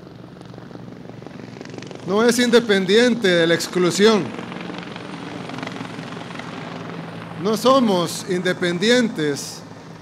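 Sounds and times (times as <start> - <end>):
aircraft engines droning: 0.0 - 10.0.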